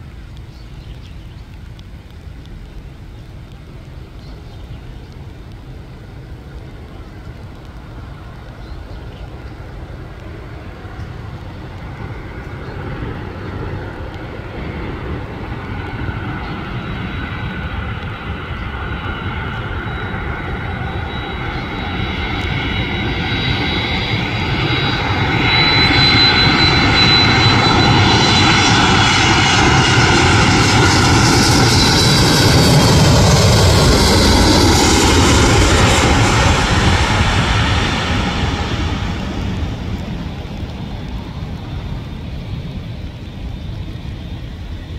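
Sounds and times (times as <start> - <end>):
jet airliner engine noise: 0.0 - 44.9
high jet whine: 5.2 - 44.9.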